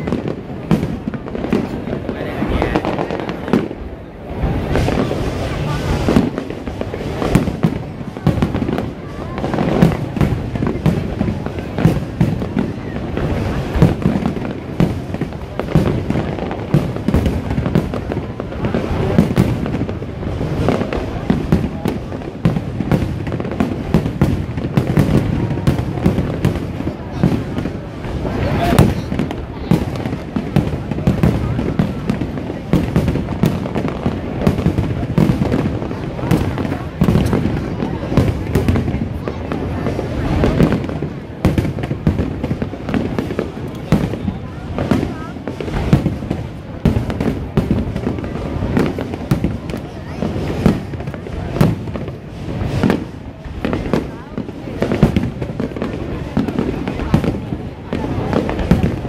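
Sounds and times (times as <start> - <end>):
crowd voices: 0.0 - 59.0.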